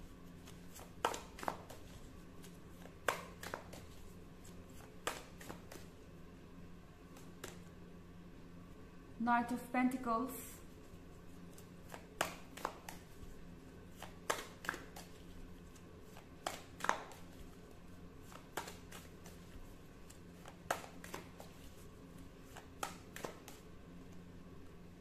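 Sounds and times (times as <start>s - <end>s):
faint low hum: 0.0s - 25.0s
cards clicking and tapping: 0.4s - 6.0s, 7.1s - 7.7s, 11.5s - 13.3s, 13.9s - 17.6s, 18.2s - 21.8s, 22.4s - 23.7s.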